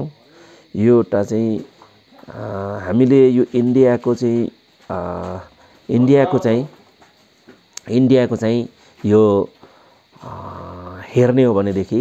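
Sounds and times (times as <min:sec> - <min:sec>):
man speaking a syllable: 0:00.0 - 0:06.8, 0:07.8 - 0:09.6, 0:10.2 - 0:12.0
man humming hesitantly: 0:10.2 - 0:11.0.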